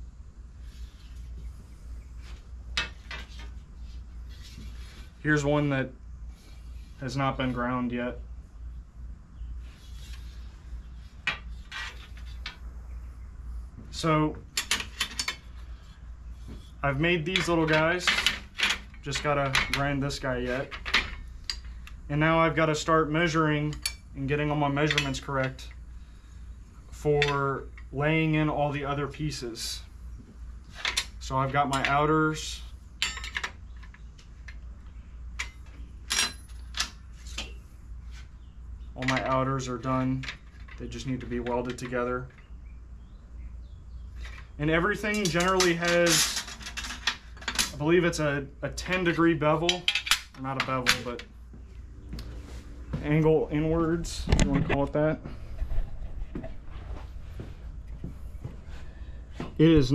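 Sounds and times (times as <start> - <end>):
low steady hum: 0.0 - 59.9
metal clinks and scrapes: 35.4 - 37.6, 45.0 - 47.8.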